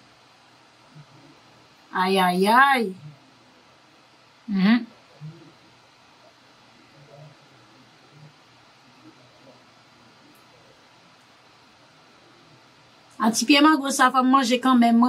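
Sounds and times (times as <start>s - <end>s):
quiet hiss: 0.0s - 15.0s.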